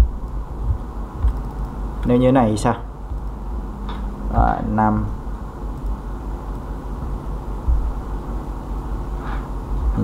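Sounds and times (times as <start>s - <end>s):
steady low electrical hum: 0.0s - 10.0s.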